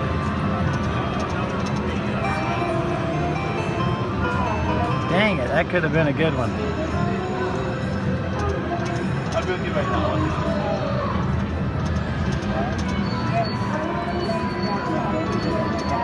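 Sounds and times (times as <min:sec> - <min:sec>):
indistinct casino chatter: 0:00.0 - 0:16.0
slot machine game music: 0:00.8 - 0:10.5.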